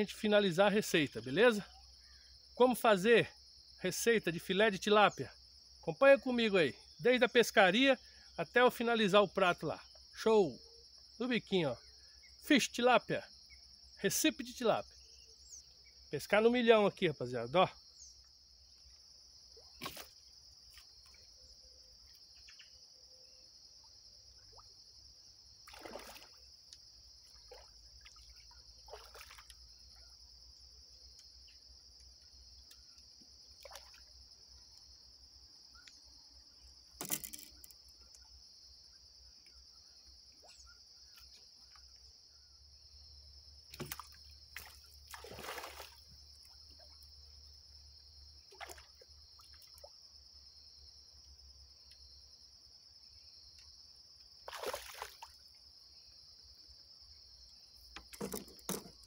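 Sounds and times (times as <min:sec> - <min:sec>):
crickets chirping: 0:00.0 - 0:59.0
soft water splashes and swishes: 0:25.6 - 0:30.2, 0:33.2 - 0:34.7, 0:43.7 - 0:47.0, 0:48.4 - 0:50.0, 0:54.4 - 0:55.6.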